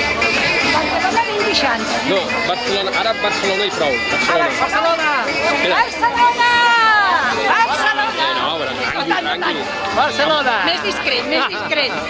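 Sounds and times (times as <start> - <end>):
people talking and calling out: 0.0 - 12.0
long drawn-out shout: 6.0 - 7.5.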